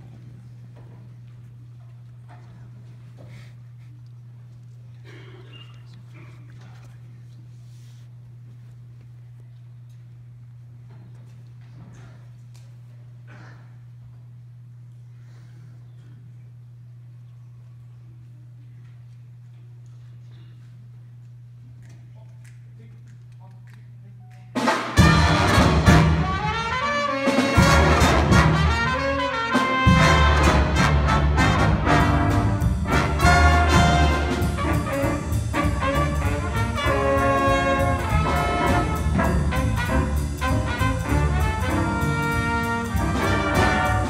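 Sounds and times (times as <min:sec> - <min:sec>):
low steady hum: 0:00.0 - 0:44.0
jazz big band playing: 0:24.4 - 0:44.0.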